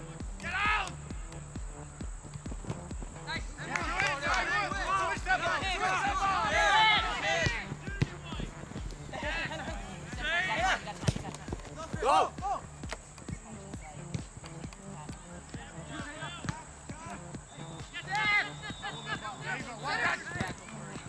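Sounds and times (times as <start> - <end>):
ball being kicked on grass: 0.0 - 21.0
distant shouts: 0.0 - 21.0.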